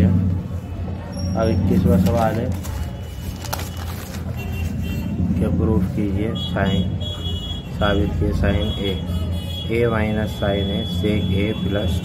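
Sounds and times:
paper page rustling: 0:01.8 - 0:04.8
paper crackle: 0:01.8 - 0:04.9.

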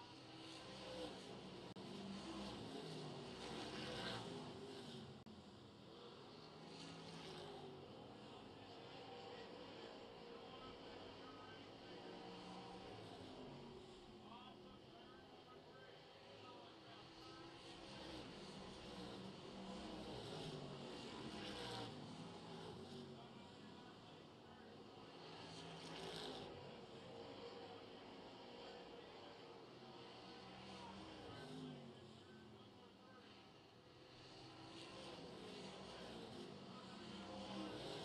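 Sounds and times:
distant race car engines: 0:00.0 - 0:38.0.

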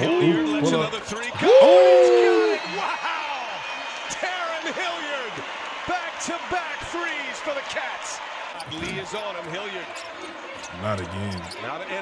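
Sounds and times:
men's voices exclaiming and talking: 0:00.0 - 0:10.0, 0:10.6 - 0:12.0.

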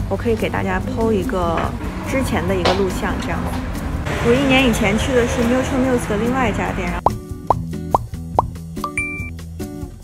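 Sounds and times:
light background music: 0:00.0 - 0:10.0
cartoon plop pops: 0:07.0 - 0:08.6
high ding: 0:08.8 - 0:09.3.

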